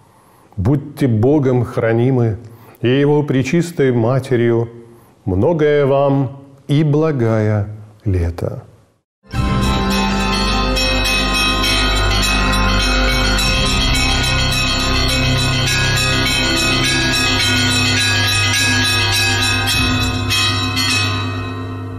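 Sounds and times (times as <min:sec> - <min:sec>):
sustained low bass: 0:09.3 - 0:20.4
ringing bell chimes: 0:09.3 - 0:21.9.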